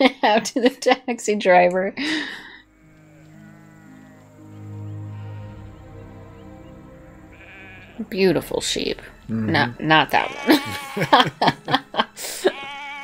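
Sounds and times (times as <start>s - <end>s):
sustained low music chord: 2.1s - 12.4s
sheep bleating: 7.3s - 8.0s, 9.5s - 11.3s, 12.4s - 13.0s
person laughing: 10.3s - 12.7s.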